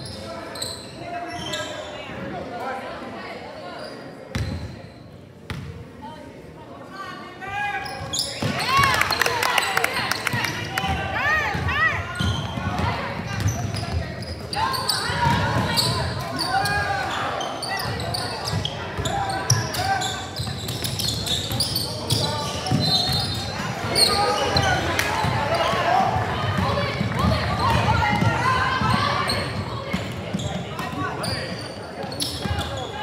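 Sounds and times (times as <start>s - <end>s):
sneakers squeaking on floor: 0.0s - 2.3s, 3.7s - 5.7s, 7.8s - 9.3s, 11.5s - 33.0s.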